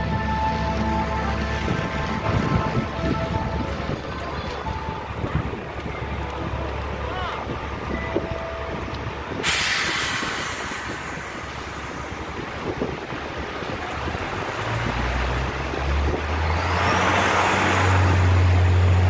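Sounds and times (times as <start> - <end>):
heavy vehicle engine hum: 0.0 - 19.0
loud hiss: 9.4 - 12.4.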